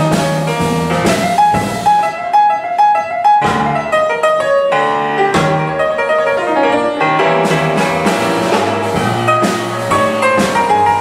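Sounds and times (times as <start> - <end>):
drum kit: 0.0 - 11.0
grand piano chords and runs: 0.0 - 11.0.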